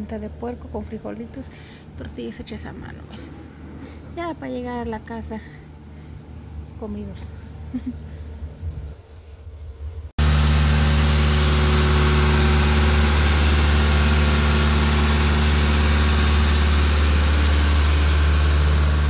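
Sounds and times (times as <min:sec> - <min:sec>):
road sweeper engine running: 0:10.2 - 0:19.0.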